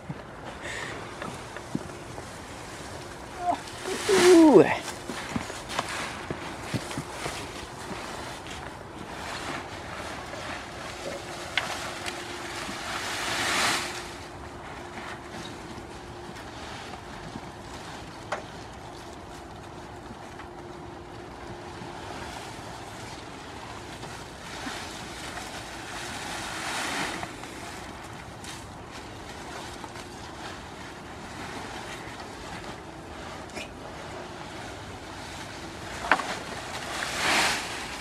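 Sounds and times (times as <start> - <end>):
leafy branches rustling: 0.0 - 38.0.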